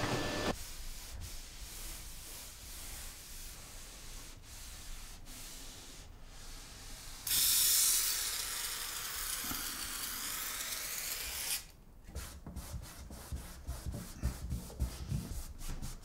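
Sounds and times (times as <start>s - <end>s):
cloth wiping wooden doors: 0.0s - 7.2s, 12.2s - 16.0s
aerosol spray can hissing: 7.2s - 8.4s.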